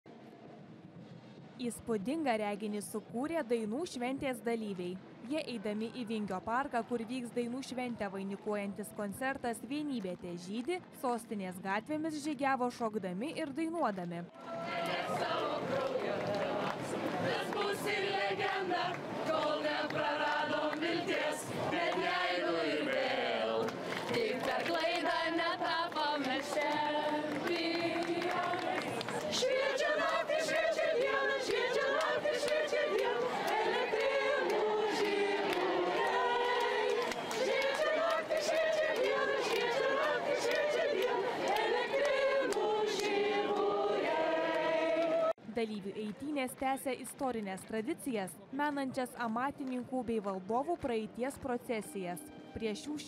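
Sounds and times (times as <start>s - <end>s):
group of people singing: 14.6s - 45.4s.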